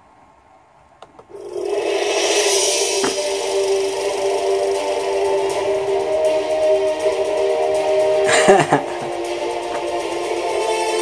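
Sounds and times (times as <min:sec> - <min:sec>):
loud rush with low hum: 0:01.3 - 0:11.0
music: 0:01.4 - 0:11.0.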